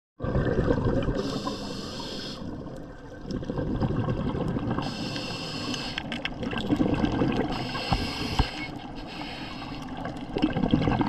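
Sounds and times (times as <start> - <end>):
bubbles burbling underwater: 0.2 - 5.2, 6.1 - 8.2, 9.8 - 11.0
regulator inhalation hiss: 1.2 - 2.5, 4.8 - 6.1, 7.5 - 9.9.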